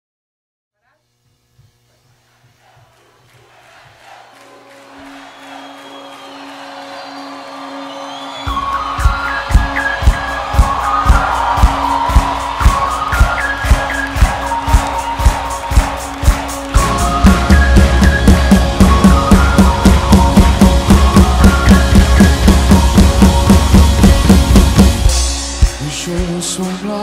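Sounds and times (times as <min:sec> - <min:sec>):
drum kit beat: 0:08.4 - 0:27.0.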